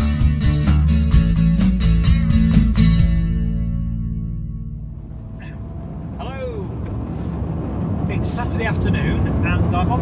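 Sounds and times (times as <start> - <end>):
guitar music: 0.0 - 5.5
van engine and road noise: 0.0 - 10.0.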